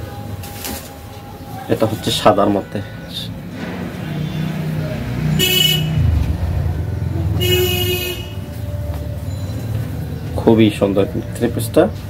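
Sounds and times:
vehicle engine rumble: 3.2s - 11.2s
vehicle horn honks: 4.0s - 6.2s, 7.2s - 8.5s.

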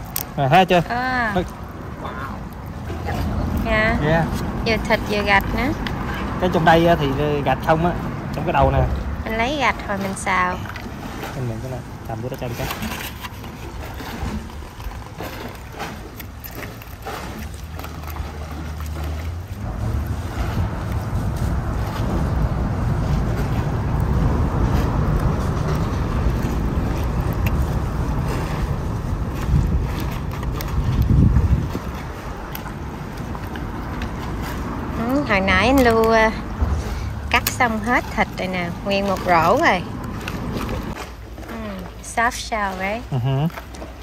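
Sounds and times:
engine rumble of passing vehicle: 17.1s - 41.0s.

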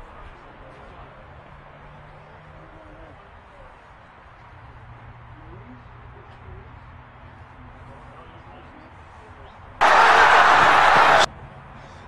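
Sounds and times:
loud burst of rushing noise: 9.8s - 11.3s.

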